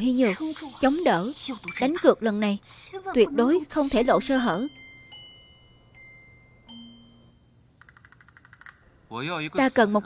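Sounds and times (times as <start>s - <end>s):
rapid chime tinkling: 3.7s - 8.0s
soft high chime tones: 3.8s - 7.6s.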